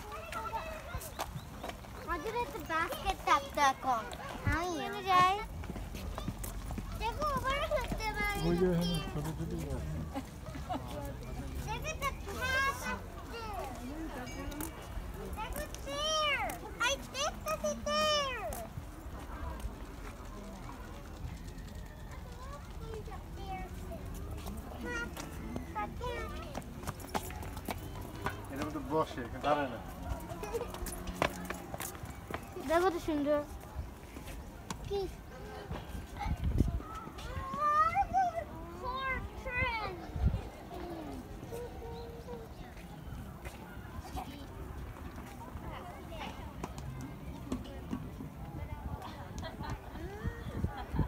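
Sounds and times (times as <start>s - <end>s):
footsteps on paving: 0.0s - 11.2s, 24.0s - 37.8s
children calling and chattering: 0.0s - 51.0s.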